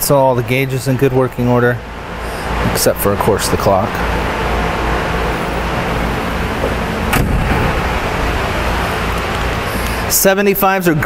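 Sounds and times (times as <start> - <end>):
faint hum: 0.0 - 11.0
low rumble: 4.3 - 10.1
sharp knock: 7.1 - 8.0.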